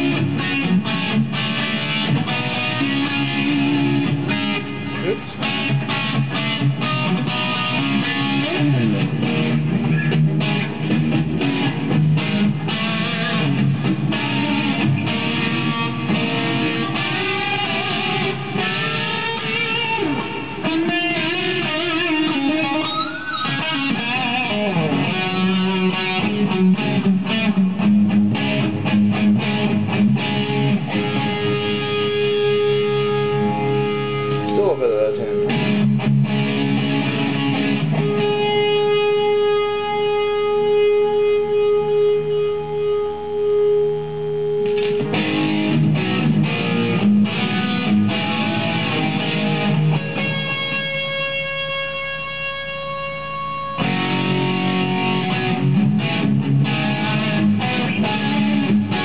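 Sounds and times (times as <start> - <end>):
distorted electric guitar riffs: 0.0 - 59.0.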